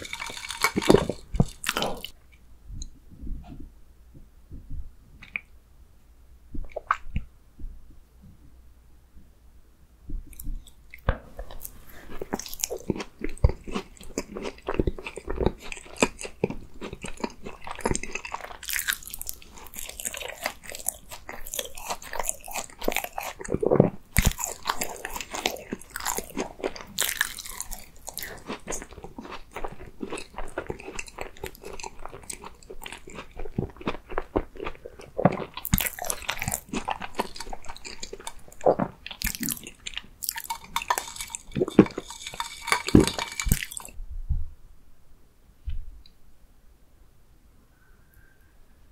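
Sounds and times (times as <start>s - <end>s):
pastry crunching: 0.0s - 2.2s, 10.3s - 44.0s
wet chewing: 0.0s - 2.2s, 10.3s - 44.0s.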